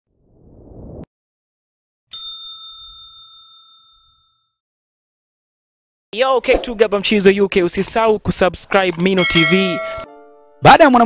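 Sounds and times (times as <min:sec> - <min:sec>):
notification bell ding: 0:09.2 - 0:10.2.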